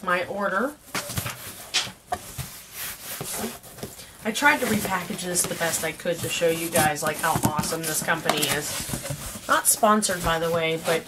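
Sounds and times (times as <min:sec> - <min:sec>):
cardboard flaps scraping: 0:00.9 - 0:11.0.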